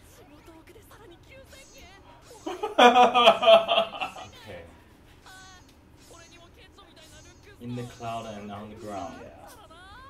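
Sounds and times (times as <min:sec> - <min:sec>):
man laughing loudly: 0:02.5 - 0:04.3.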